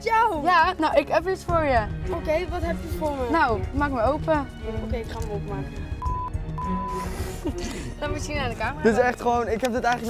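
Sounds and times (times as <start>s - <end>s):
background music: 0.0s - 10.0s
censor bleeps: 6.0s - 7.0s.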